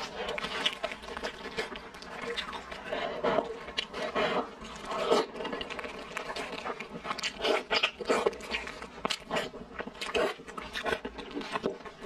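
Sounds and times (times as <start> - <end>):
meat and skin tearing: 0.0 - 2.9, 3.7 - 12.0
wet chewing: 0.0 - 12.0.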